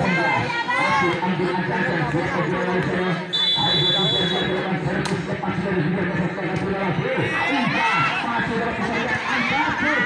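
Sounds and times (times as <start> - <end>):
crowd chatter: 0.0 - 10.0
referee's whistle blast: 3.3 - 4.6.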